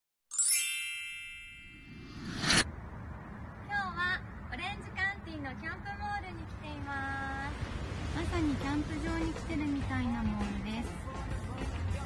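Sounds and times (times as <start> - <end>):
bell-like chime ringing: 0.3 - 2.6.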